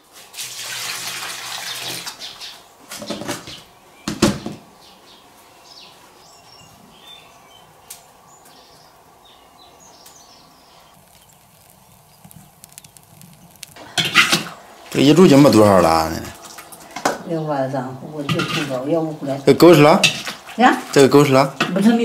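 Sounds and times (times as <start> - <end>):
wood fire crackling: 10.0 - 16.6
water pouring off greens: 10.9 - 14.1.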